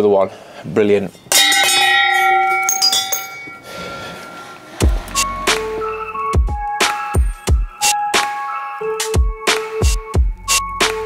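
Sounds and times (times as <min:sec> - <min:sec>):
bell ringing: 0:01.3 - 0:04.6
music: 0:04.7 - 0:11.0.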